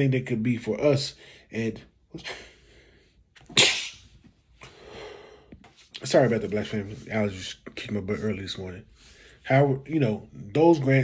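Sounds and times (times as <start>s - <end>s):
man sneezing: 3.4s - 4.2s.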